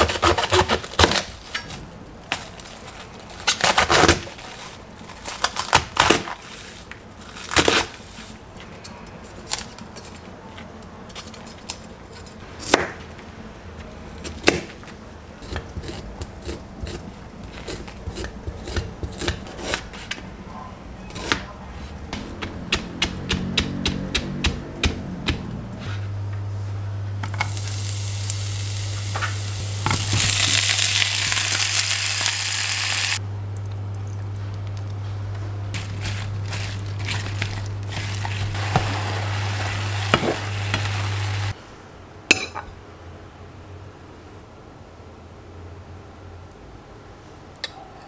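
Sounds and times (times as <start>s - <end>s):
steady low hum: 11.9s - 42.2s
spoon scraping ginger: 15.4s - 20.2s, 35.8s - 41.4s
knife chopping on plastic board: 22.1s - 25.5s
vegetables sizzling in a pan: 27.4s - 33.2s, 37.8s - 41.6s.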